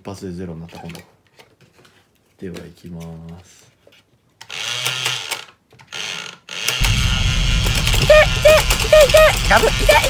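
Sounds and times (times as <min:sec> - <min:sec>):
toy motor running: 0:04.5 - 0:07.0, 0:07.6 - 0:10.0.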